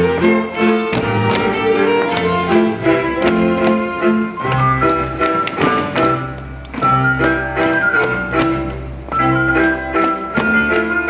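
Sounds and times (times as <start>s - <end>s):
folk band playing dance tune: 0.0s - 11.0s
sharp rhythmic taps: 0.0s - 11.0s.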